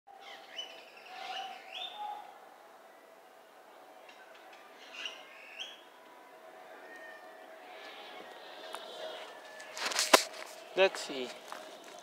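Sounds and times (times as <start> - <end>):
small birds chirping: 0.1 - 2.3.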